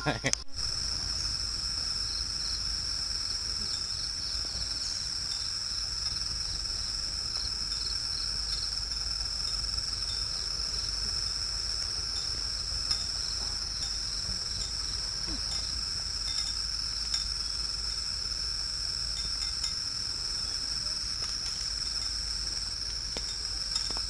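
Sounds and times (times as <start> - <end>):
insects chorus: 0.0 - 24.0.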